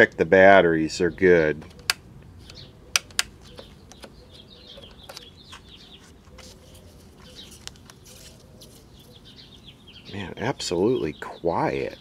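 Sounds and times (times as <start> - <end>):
faint birds chirping: 0.0 - 12.0
radio switch clicks: 1.7 - 4.2.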